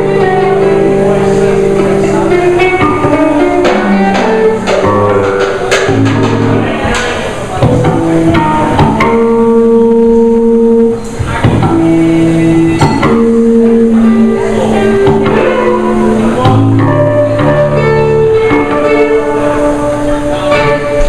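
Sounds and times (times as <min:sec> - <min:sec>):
bass guitar: 0:00.0 - 0:21.0
drum kit and cymbal strikes: 0:00.0 - 0:21.0
guitars: 0:00.0 - 0:21.0.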